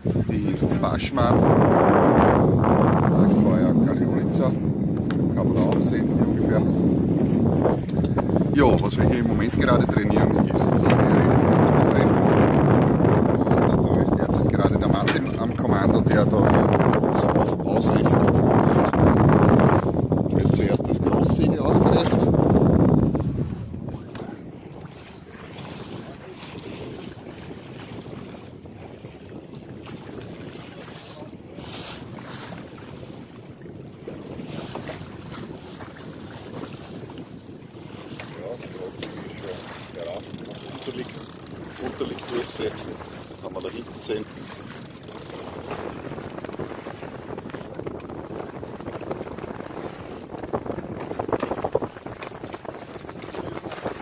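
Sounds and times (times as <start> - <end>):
rush of wind and water: 0.0 - 54.0
wind buffeting microphone: 0.0 - 54.0.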